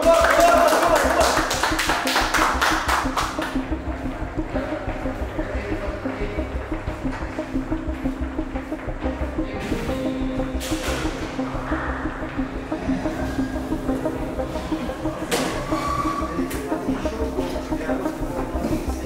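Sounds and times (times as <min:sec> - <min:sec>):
music with pulsing beat: 0:00.0 - 0:19.0.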